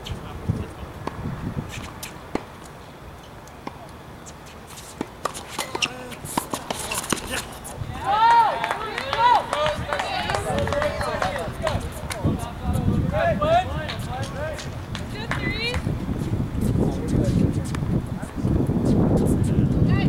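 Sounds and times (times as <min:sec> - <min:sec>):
tennis ball struck with rackets: 0:04.8 - 0:07.7
voices shouting and cheering: 0:06.9 - 0:15.9.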